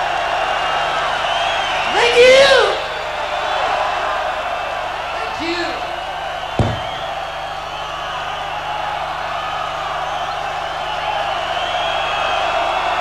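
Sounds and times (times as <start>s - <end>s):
concert crowd cheering: 0.0s - 13.0s.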